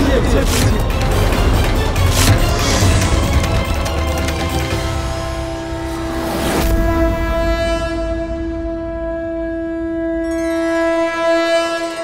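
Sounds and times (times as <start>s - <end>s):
brighter horn tone: 0.1s - 12.0s
conch shell blown: 5.5s - 12.0s.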